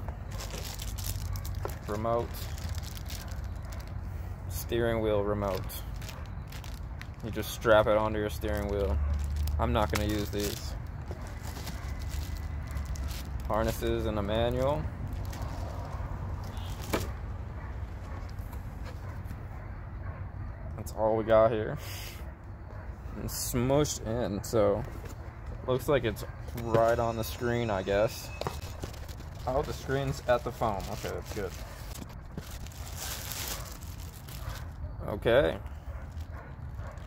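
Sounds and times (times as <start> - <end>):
plastic bag rustling: 0.0 - 4.6, 5.4 - 17.2, 26.6 - 34.8
cardboard and plastic packing handled: 0.0 - 17.4, 24.8 - 37.0.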